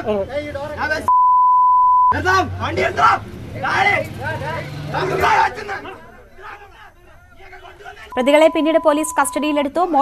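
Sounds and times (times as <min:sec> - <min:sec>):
censor bleep: 0:01.1 - 0:02.2, 0:08.1 - 0:09.6.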